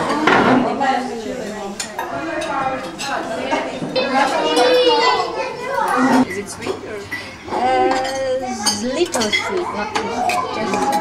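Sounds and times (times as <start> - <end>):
people talking: 0.0 - 11.0
cutlery and dishes clinking: 5.8 - 11.0.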